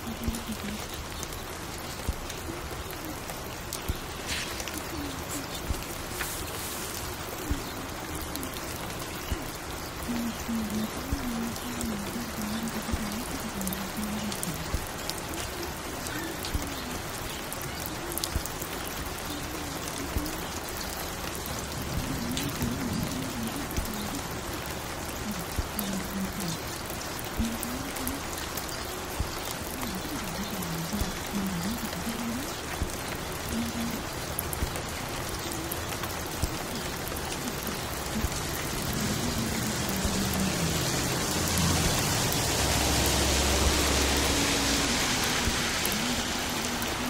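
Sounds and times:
steady rain: 0:00.0 - 0:47.0.

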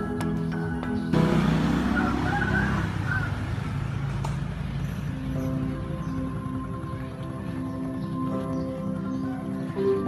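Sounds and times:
background music: 0:00.0 - 0:10.0
road traffic rumble and hiss: 0:00.0 - 0:10.0.

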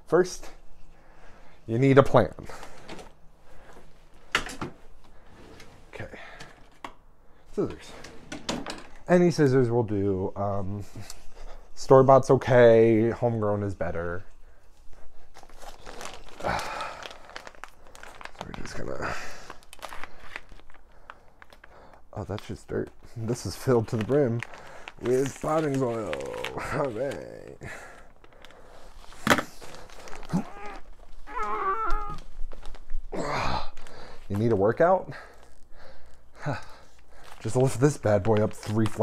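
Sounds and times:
plastic bag rustling and crinkling: 0:14.8 - 0:39.0.

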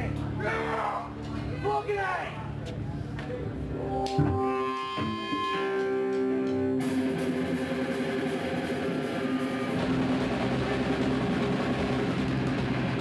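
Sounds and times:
low bass: 0:02.5 - 0:09.1
distorted electric guitars: 0:03.7 - 0:13.0
drums: 0:04.1 - 0:13.0.

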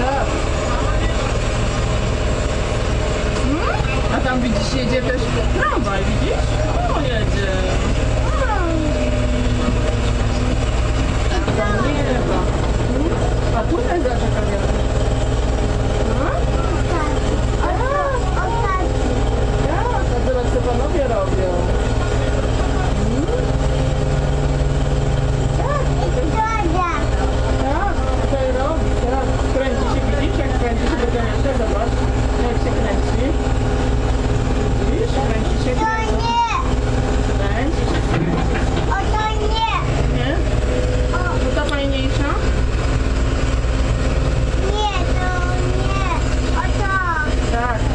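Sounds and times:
construction machinery rumbling: 0:00.0 - 0:47.9
voices: 0:00.0 - 0:47.9.

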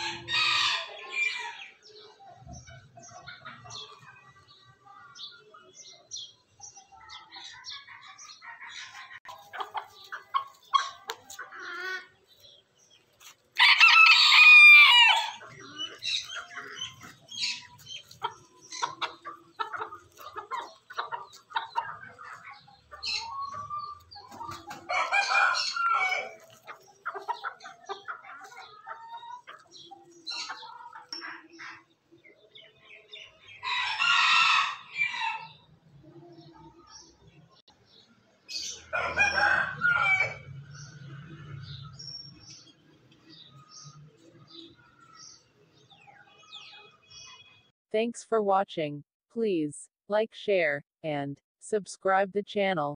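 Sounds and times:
chickens clucking: 0:00.0 - 0:47.4
rooster crowing: 0:13.6 - 0:15.4, 0:33.6 - 0:35.5, 0:38.9 - 0:40.5
chicken clucking softly: 0:15.4 - 0:33.6.

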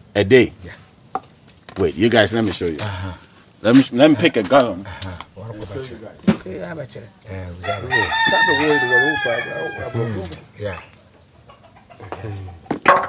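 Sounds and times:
people talking: 0:00.2 - 0:00.9, 0:01.7 - 0:11.0, 0:12.0 - 0:12.8
rooster crowing: 0:07.6 - 0:10.5.

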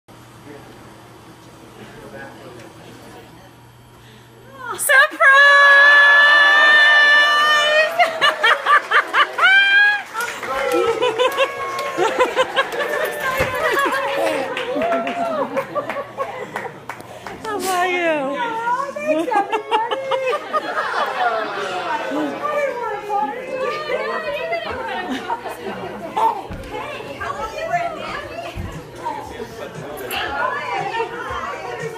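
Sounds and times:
indistinct chatter: 0:00.2 - 0:31.9
high-pitched laughter: 0:19.1 - 0:21.7.

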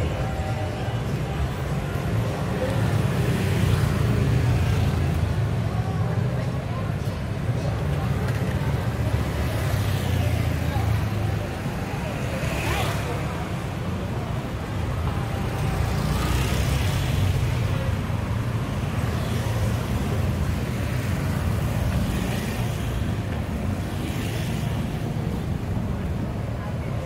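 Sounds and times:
people's voices: 0:00.0 - 0:27.0
scooters and cars on road: 0:00.0 - 0:27.0.

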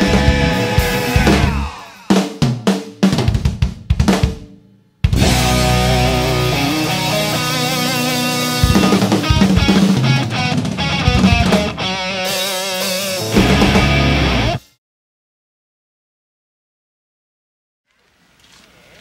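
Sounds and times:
electric guitar chords: 0:00.0 - 0:01.7, 0:05.2 - 0:14.7
drum kit hits: 0:00.0 - 0:14.6.

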